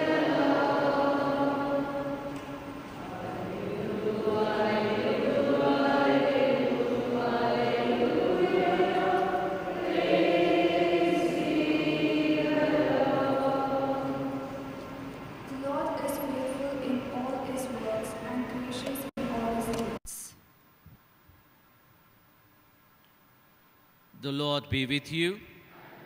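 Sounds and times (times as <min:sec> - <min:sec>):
group of voices singing: 0:00.0 - 0:15.0.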